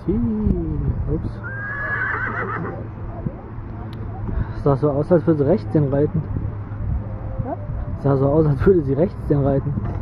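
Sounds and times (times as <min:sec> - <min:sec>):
horse whinnying: 0:01.4 - 0:02.8.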